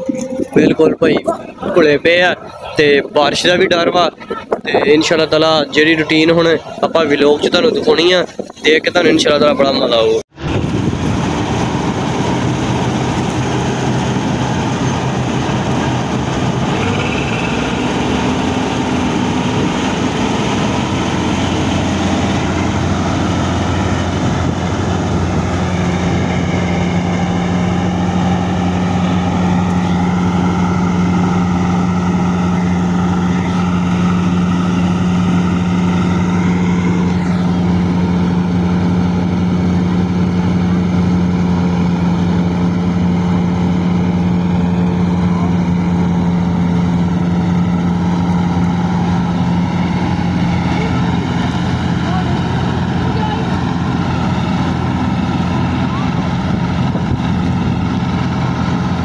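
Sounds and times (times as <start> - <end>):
combine harvester engine droning: 0.0 - 59.0
deep strong hum: 0.0 - 59.0.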